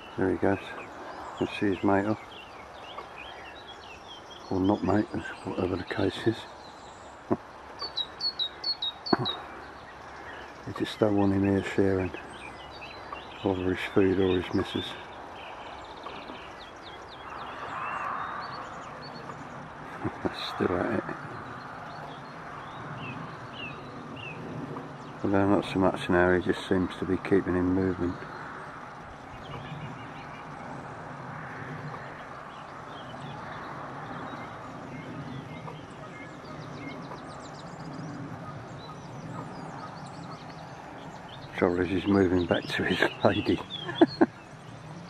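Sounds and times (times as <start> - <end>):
soft rushing background: 0.0 - 45.0
songbirds chirping and singing: 0.0 - 45.0.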